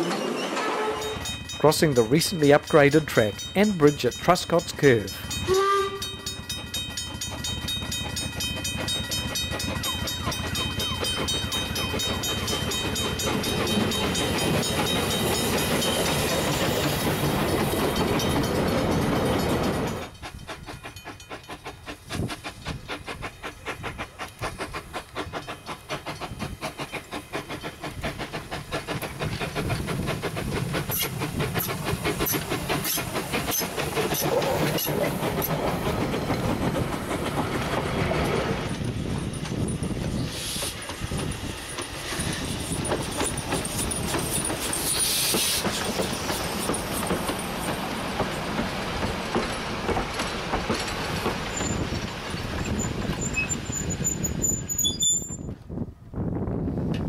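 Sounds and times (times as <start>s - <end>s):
steam locomotive chuffing: 0.0s - 55.5s
wheels clicking over rail joints: 0.0s - 55.7s.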